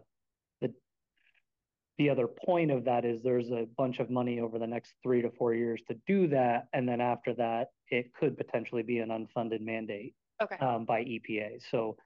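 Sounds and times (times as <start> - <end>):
man speaking a word: 2.0 - 12.0.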